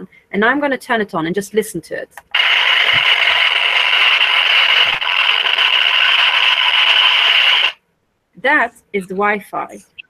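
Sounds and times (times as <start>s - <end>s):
meter speaker hissing buzz: 2.3s - 7.8s.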